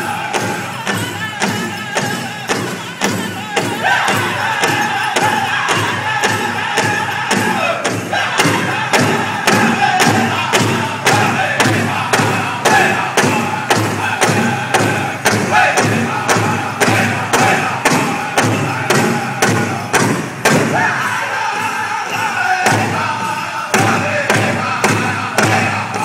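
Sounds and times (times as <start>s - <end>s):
high-pitched group singing: 0.0s - 26.0s
large drum steady beat: 0.0s - 26.0s.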